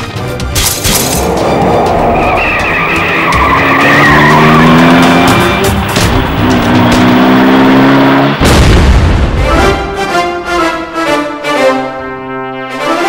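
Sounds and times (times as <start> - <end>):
dramatic background music: 0.0 - 13.0
tyres screeching: 0.8 - 6.8
truck engine revving: 0.9 - 8.6.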